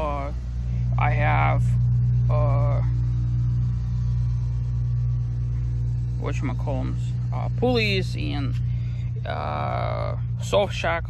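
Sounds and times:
low hum and rumble: 0.0 - 11.0.

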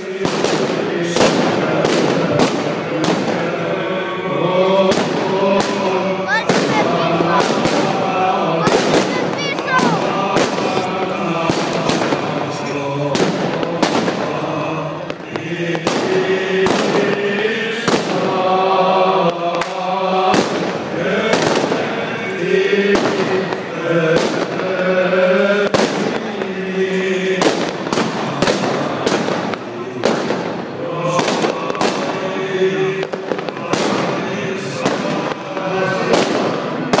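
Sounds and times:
firecrackers banging: 0.0 - 37.0
men chanting: 0.0 - 37.0.

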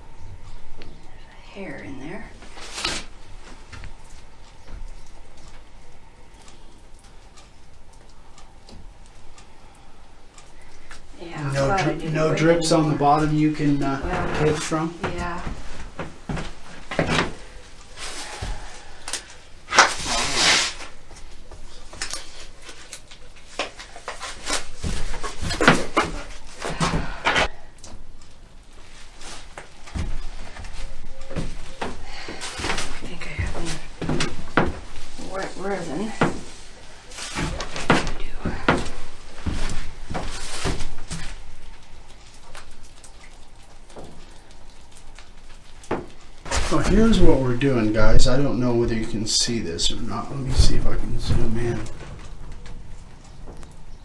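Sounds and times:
rustling and scraping: 0.0 - 54.0.

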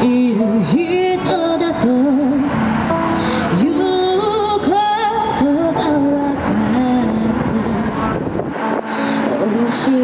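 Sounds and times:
passing street traffic: 0.0 - 10.0.

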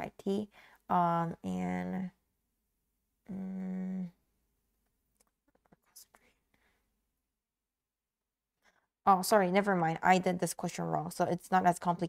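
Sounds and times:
woman whispering: 5.7 - 6.4.

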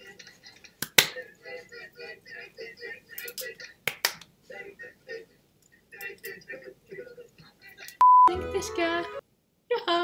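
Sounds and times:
sharp hand claps: 0.8 - 1.2, 3.8 - 4.3.

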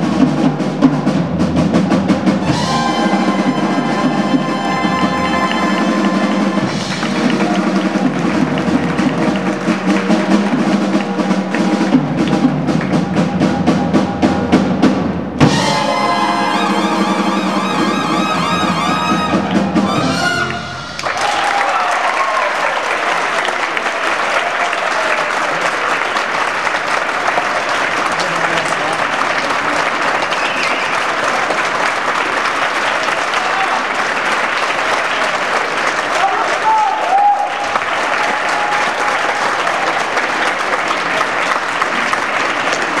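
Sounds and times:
audience applauding: 2.4 - 13.8, 15.5 - 43.0.

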